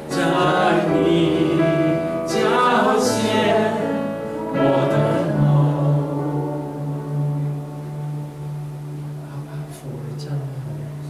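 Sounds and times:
electronic keyboard sustained chord: 0:00.0 - 0:11.0.

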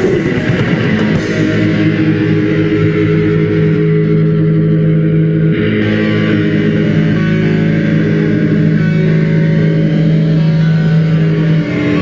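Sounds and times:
distorted guitar and bass drone: 0:00.0 - 0:12.0.

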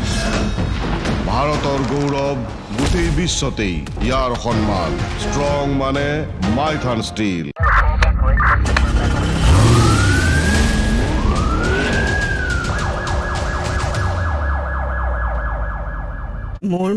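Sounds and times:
police siren wailing and yelping: 0:09.4 - 0:16.6.

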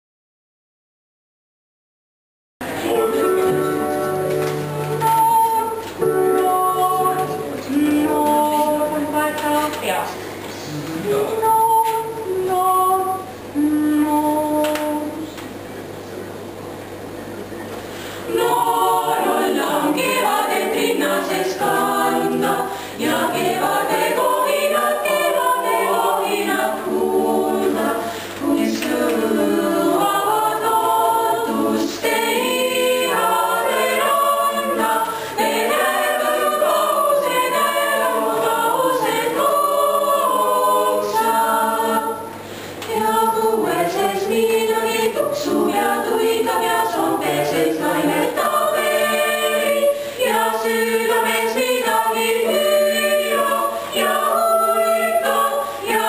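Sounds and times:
choir singing a cappella: 0:02.6 - 0:09.8, 0:10.6 - 0:15.4, 0:18.2 - 0:56.0.

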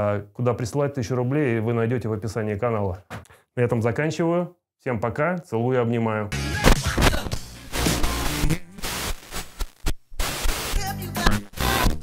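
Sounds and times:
outro music: 0:06.4 - 0:09.6
crackling static and glitch noise: 0:06.6 - 0:12.0.

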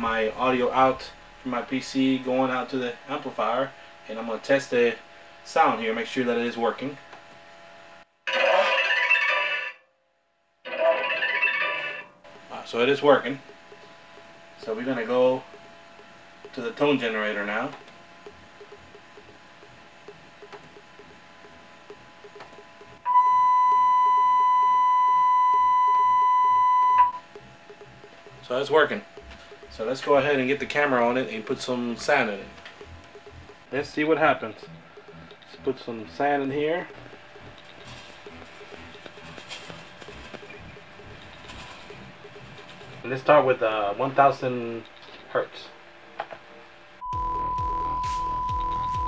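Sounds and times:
steady test tone: 0:12.5 - 0:45.1
sand grains ticking and pattering: 0:33.1 - 0:43.3.

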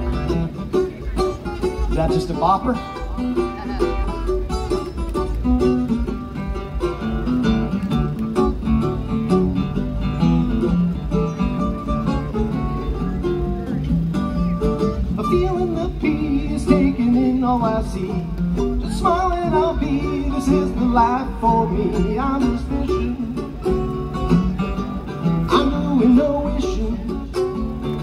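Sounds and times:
acoustic guitar strumming: 0:00.0 - 0:28.0
mandolin picking: 0:00.0 - 0:28.0.

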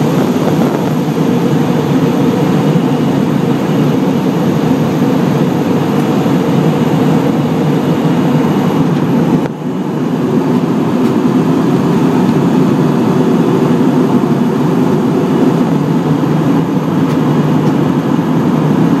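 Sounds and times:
jet airliner cabin noise: 0:00.0 - 0:19.0.

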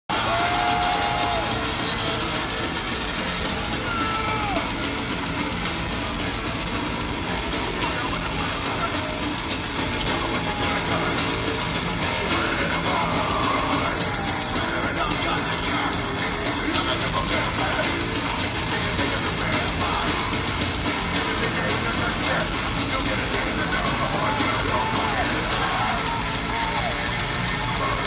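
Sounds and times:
heavy metal band playing live: 0:00.1 - 0:28.0.

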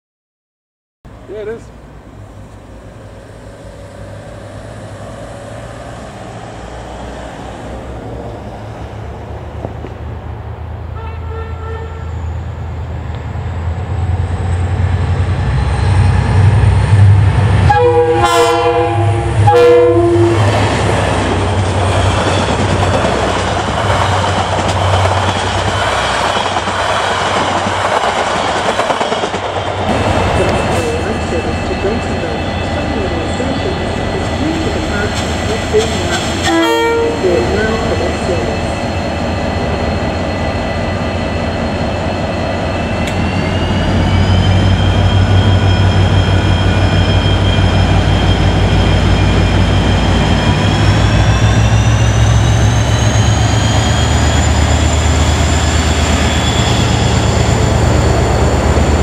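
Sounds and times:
diesel locomotive engine drone: 0:01.1 - 0:59.0
train horn blasts: 0:11.0 - 0:12.2, 0:17.6 - 0:20.5, 0:36.1 - 0:37.8
wheel and rail noise: 0:20.3 - 0:59.0.

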